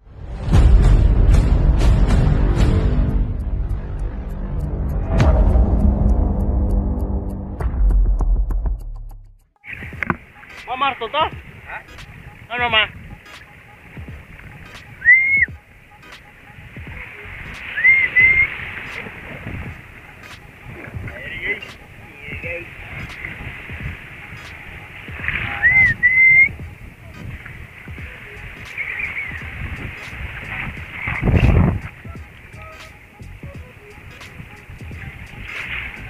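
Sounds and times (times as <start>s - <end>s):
low intro music: 0.0s - 17.8s, 29.4s - 36.0s
man calling out: 10.6s - 13.0s
loud whistled notes: 14.7s - 19.0s, 24.2s - 26.6s, 28.2s - 30.2s.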